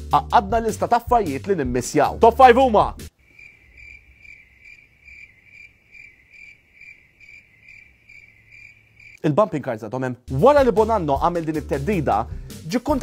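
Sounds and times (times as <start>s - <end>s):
cricket chirping: 3.1s - 9.2s.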